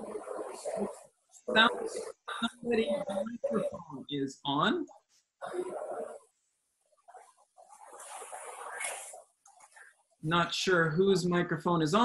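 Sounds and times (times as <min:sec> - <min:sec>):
indistinct background noises: 0:00.0 - 0:04.0, 0:05.4 - 0:06.3.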